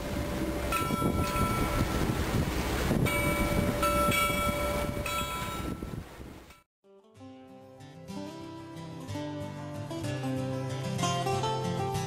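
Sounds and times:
rush of sea and wind: 0.0s - 6.6s
bell buoy ringing: 0.1s - 2.0s, 2.9s - 6.6s.

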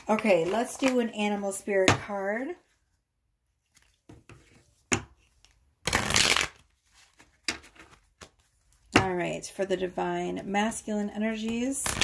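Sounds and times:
cards rustling: 0.0s - 1.1s, 3.6s - 8.9s.

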